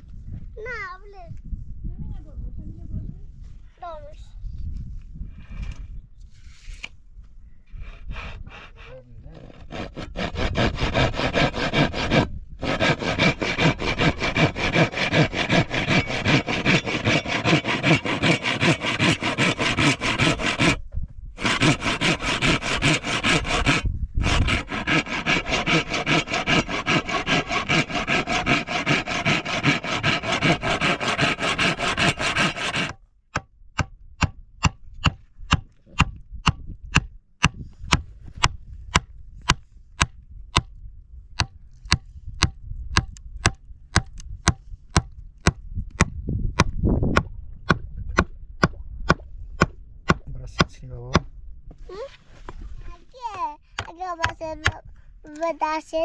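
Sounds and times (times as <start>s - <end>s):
handsaw cutting wood: 7.8s - 20.8s, 21.4s - 33.0s.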